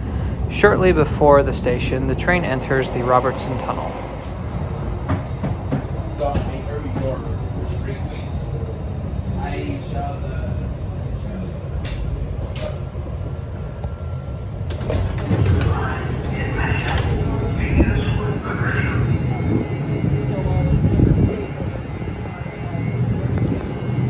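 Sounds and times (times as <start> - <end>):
train rumbling in tunnel: 0.0 - 24.0.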